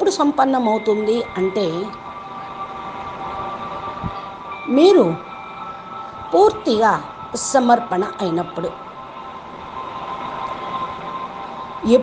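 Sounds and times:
soft sustained background music: 0.0s - 12.0s.

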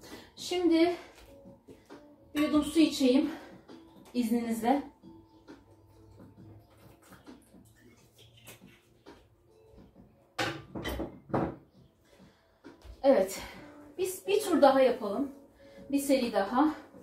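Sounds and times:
faint background music: 0.0s - 17.0s.

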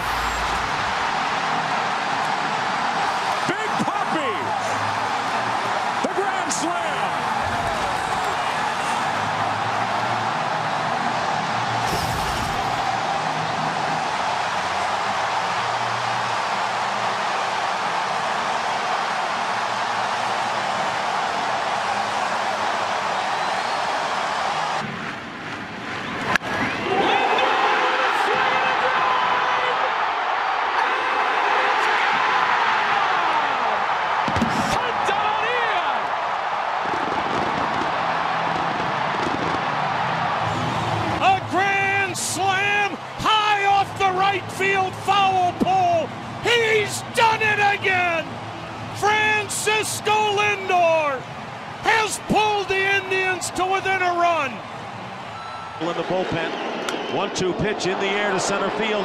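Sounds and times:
stadium crowd cheering: 0.0s - 59.0s.

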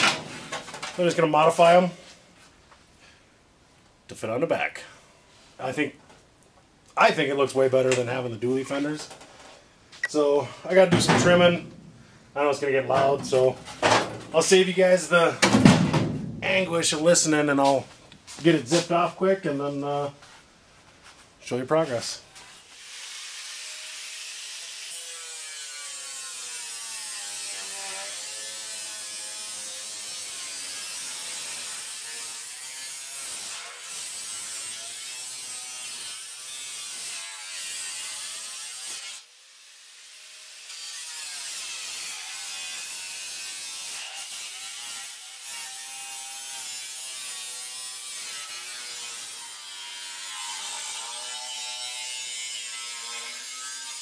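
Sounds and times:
angle grinder cutting steel: 22.5s - 54.0s.

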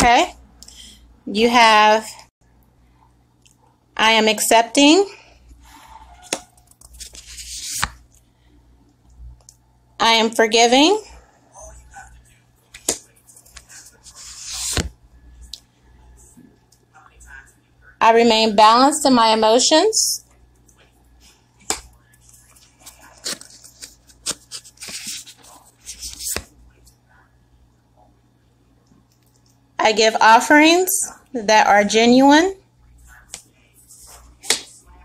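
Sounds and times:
cards rustling: 6.3s - 8.0s, 12.7s - 14.9s, 21.7s - 26.6s
card sliding off deck: 7.0s - 8.0s, 13.6s - 14.9s.

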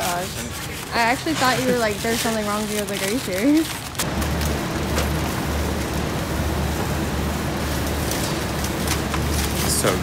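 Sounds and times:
cooler fans rushing: 0.0s - 10.0s.

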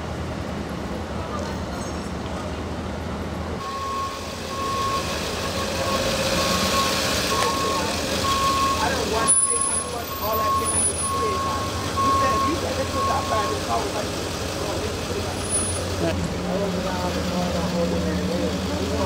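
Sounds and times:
people's voices: 0.8s - 19.0s
vehicle engine idling: 2.6s - 19.0s
backup alarm beeping: 3.6s - 13.8s.

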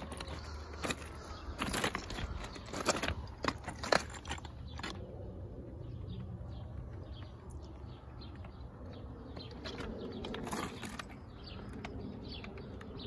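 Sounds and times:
stones clacking together: 0.0s - 5.0s.

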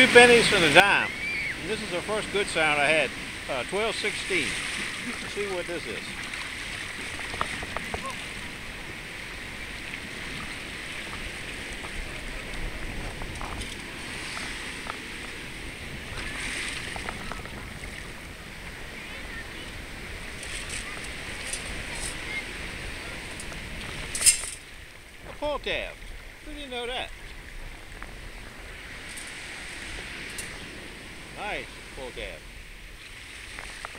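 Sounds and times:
shallow surf washing: 0.0s - 33.9s.

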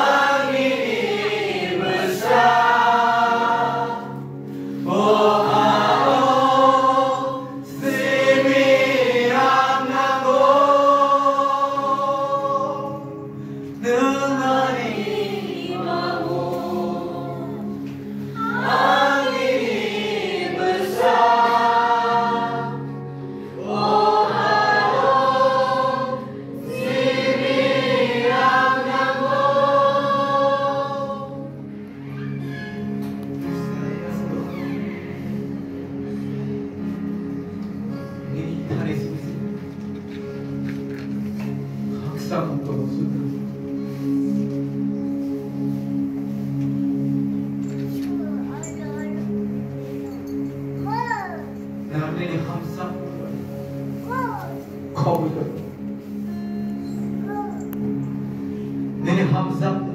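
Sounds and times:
group singing worship song: 0.0s - 41.8s
low held accompaniment notes: 0.0s - 59.9s.

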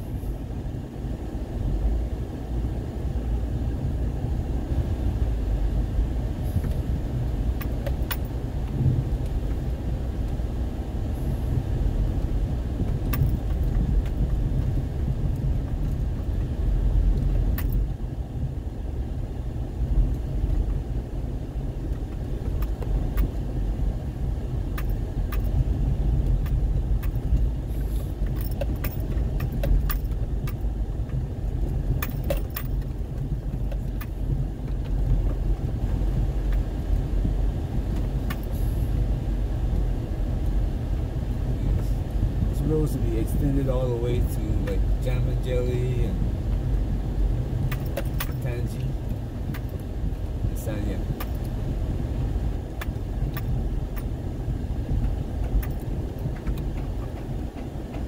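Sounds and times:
car engine and tyres rumbling: 0.0s - 58.0s
light clicks and rattles: 6.6s - 10.4s, 12.2s - 18.0s, 24.7s - 37.1s, 37.8s - 38.7s, 39.7s - 54.2s, 54.8s - 58.0s.

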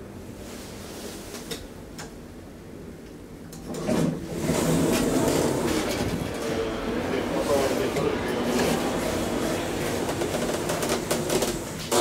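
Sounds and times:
elevator doors opening: 3.6s - 12.0s
busy public space noise: 4.4s - 12.0s.

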